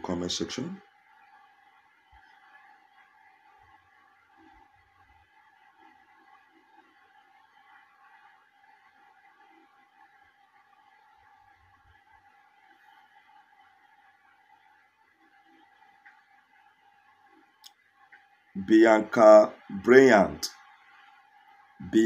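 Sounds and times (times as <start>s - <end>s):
faint steady high hum: 0.0s - 22.0s.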